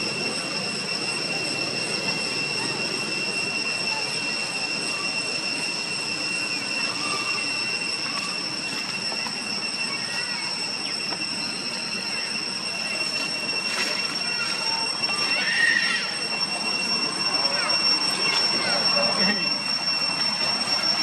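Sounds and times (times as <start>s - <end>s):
cicadas droning: 0.0s - 21.0s.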